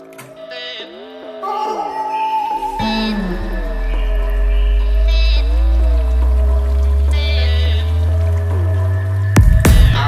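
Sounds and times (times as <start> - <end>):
high wavering synth notes: 0.0 - 9.3.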